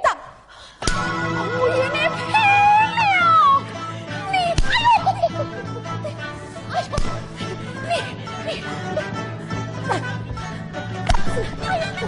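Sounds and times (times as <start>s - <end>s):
stage music accompaniment: 0.8s - 7.7s.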